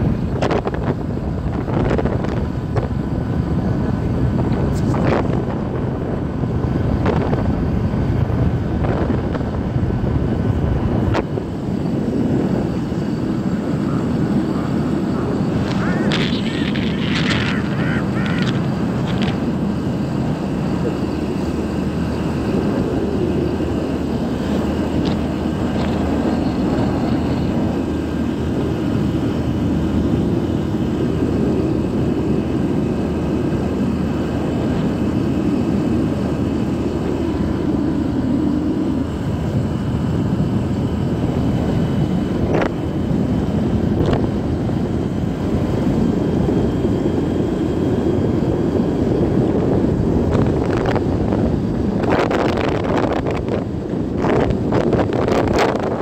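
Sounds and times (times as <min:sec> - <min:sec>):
motorcycle engine drone: 0:00.0 - 0:56.0
wind and road noise: 0:00.0 - 0:56.0.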